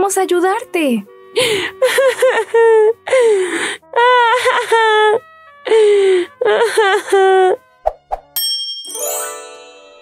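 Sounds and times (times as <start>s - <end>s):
bright ringing ding chord: 8.4s - 10.0s.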